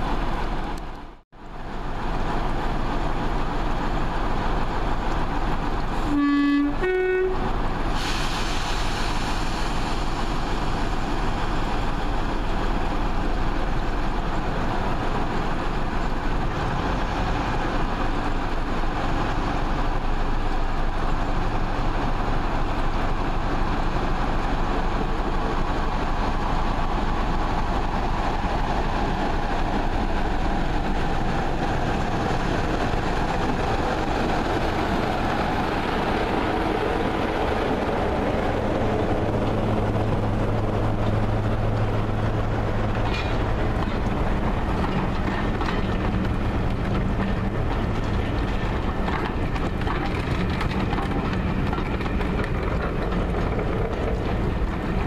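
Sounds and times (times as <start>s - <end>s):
two-tone locomotive horn: 6.0s - 7.6s.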